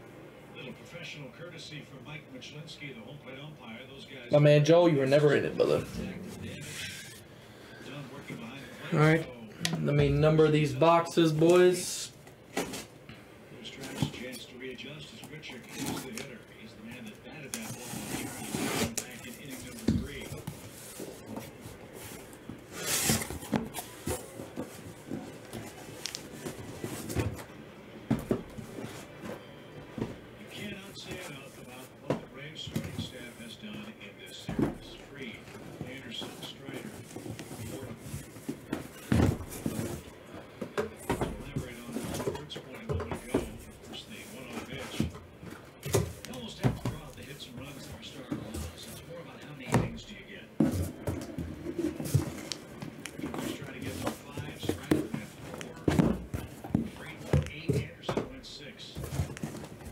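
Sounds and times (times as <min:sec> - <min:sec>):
cardboard boxes knocking and scraping: 0:35.8 - 0:40.0.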